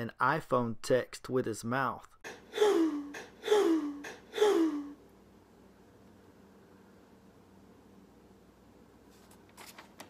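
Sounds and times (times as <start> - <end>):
man sobbing: 2.5 - 5.0.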